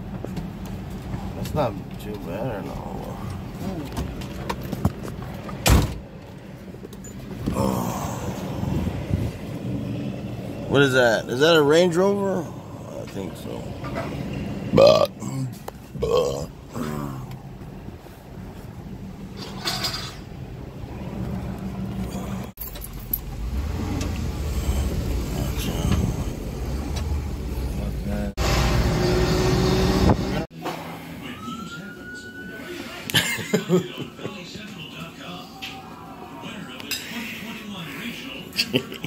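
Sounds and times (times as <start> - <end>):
vehicle engine humming: 0.0 - 30.5.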